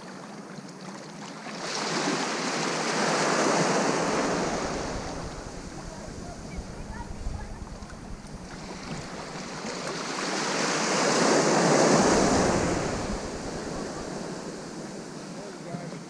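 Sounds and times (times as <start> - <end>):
sea wave washing over shallow water: 1.3 - 16.0
wind buffeting microphone: 3.5 - 15.9.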